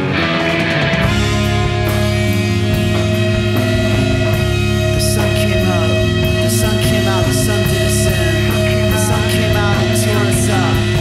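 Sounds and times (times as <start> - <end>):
bass guitar: 0.0 - 11.0
drums: 0.0 - 11.0
electric guitar: 0.0 - 11.0.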